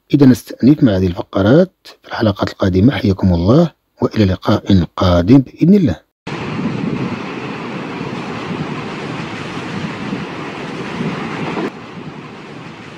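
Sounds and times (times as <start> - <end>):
steady rushing rumbling noise: 6.3 - 12.9.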